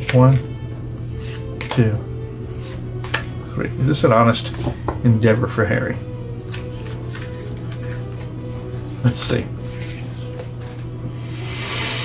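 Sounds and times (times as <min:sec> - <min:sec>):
soft background music: 0:00.0 - 0:12.0
cards clicking: 0:06.5 - 0:08.3.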